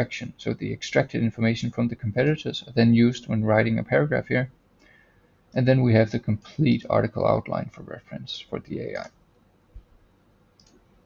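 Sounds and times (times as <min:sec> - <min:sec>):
computer mouse clicks: 0:10.6 - 0:10.9.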